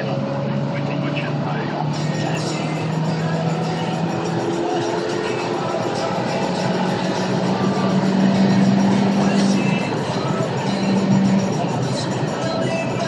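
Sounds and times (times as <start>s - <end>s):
car engine drone at high revs: 0.0s - 13.0s
music playing: 0.0s - 13.0s
wind and road noise: 0.0s - 13.0s.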